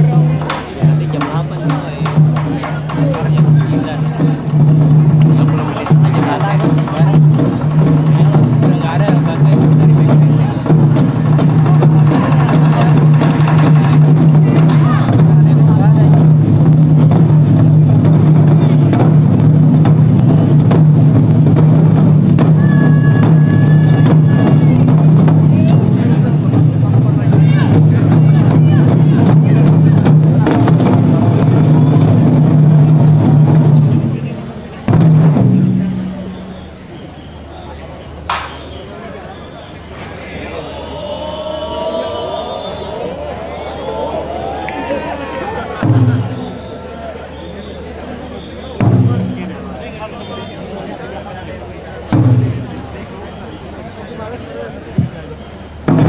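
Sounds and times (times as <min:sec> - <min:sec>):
taiko drum ensemble drumming: 0:00.0 - 0:36.4, 0:40.4 - 0:46.8, 0:48.8 - 0:49.9, 0:52.1 - 0:52.9.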